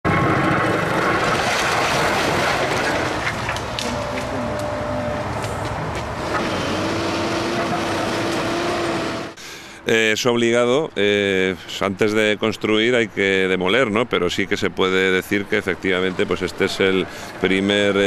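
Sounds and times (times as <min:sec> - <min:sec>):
excavator diesel engine din: 0:00.1 - 0:09.5.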